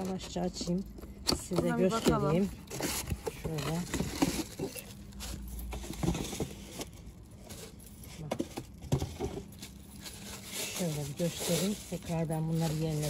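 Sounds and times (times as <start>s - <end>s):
plastic wrapping rustling: 1.9s - 13.0s.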